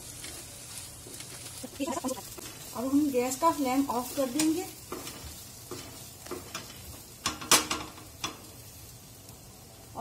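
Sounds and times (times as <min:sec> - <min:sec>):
spatula scraping a frying pan: 0:00.0 - 0:08.8
mince sizzling faintly: 0:00.0 - 0:10.0.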